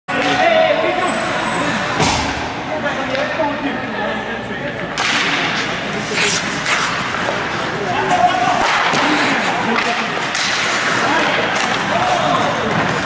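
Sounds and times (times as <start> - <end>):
sharp crack of stick or puck: 5.0 - 7.4, 8.6 - 13.0
players shouting: 7.6 - 13.0.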